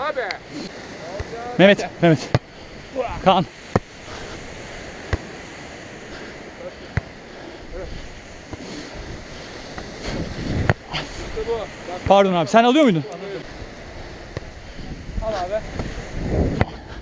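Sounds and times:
sea surf: 0.0s - 17.0s
wind: 0.0s - 17.0s.

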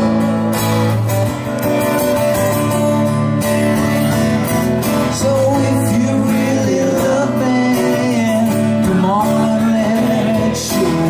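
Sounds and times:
acoustic guitars playing: 0.0s - 11.0s.

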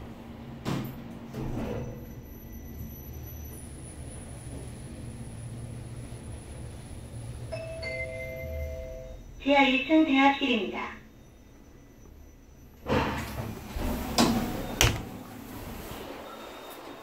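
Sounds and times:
elevator doors shutting: 0.0s - 9.6s, 10.7s - 17.0s
elevator humming and whining: 0.0s - 17.0s
two-tone arrival chime: 7.5s - 9.2s.

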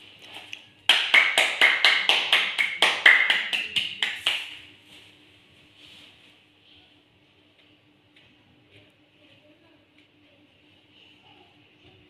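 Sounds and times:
child clapping hands: 0.9s - 4.6s.

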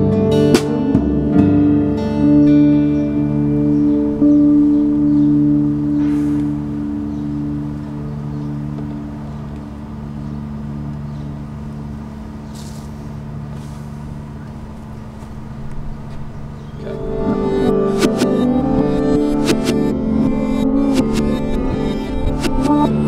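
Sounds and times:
guitar chord ringing out: 0.0s - 23.0s.

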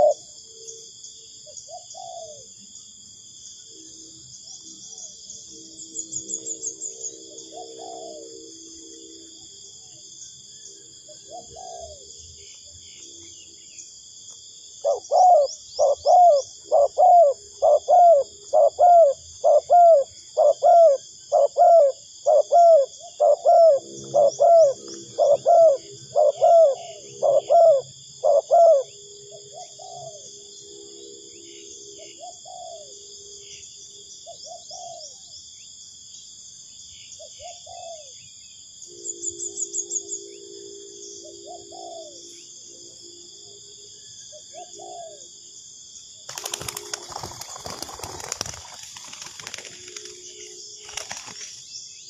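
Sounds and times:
dove cooing: 0.0s - 0.3s, 1.6s - 2.5s, 7.3s - 8.5s, 11.1s - 12.0s, 14.8s - 30.3s, 32.0s - 33.0s, 34.3s - 35.2s, 37.2s - 38.1s, 41.2s - 42.3s, 44.3s - 45.3s, 46.3s - 51.3s
high insect chorus: 0.0s - 52.0s.

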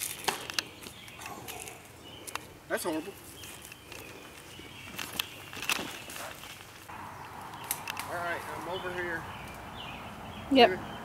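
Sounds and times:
footsteps on dirt trail: 3.1s - 7.0s.

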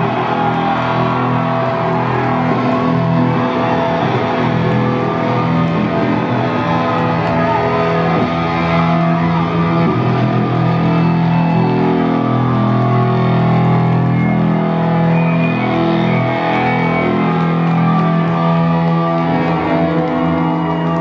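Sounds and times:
electronic-rock band playing loudly: 0.0s - 21.0s.

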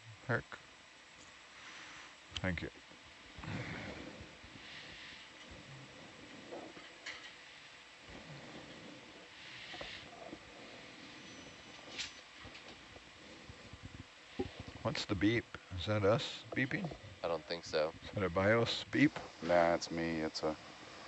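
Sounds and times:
low hiss: 0.0s - 21.0s.

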